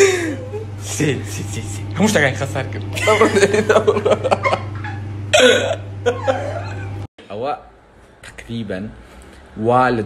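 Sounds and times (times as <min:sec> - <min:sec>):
person talking and laughing: 0:00.0 - 0:01.3, 0:02.8 - 0:07.1.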